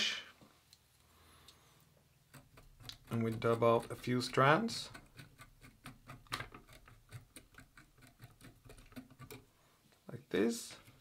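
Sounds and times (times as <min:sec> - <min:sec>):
brush scratching fibres: 0:02.3 - 0:09.5.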